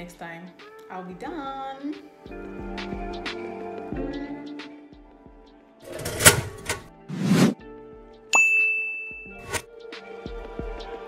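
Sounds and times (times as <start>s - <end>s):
background music: 0.0s - 11.0s
whooshes: 7.0s - 7.6s
bell ding: 8.3s - 9.6s.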